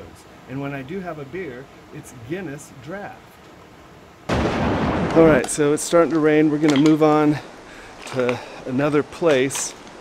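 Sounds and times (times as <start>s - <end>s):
boom and whoosh sound effect: 4.3s - 5.4s.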